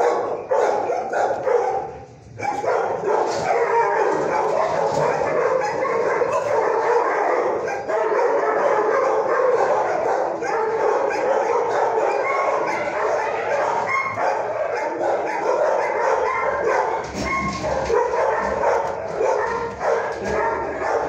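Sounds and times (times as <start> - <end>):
dogs barking and yipping: 0.0 - 21.0.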